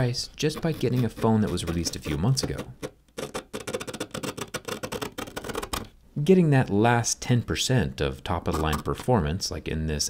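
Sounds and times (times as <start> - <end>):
metal tool scraping adhesive: 0.4 - 5.9, 8.4 - 9.1.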